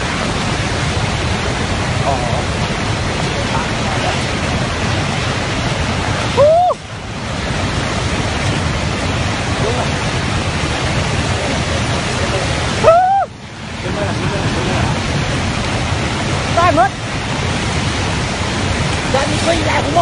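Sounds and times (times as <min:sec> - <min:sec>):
rushing floodwater roar: 0:00.0 - 0:20.0
person shouting: 0:12.8 - 0:13.3.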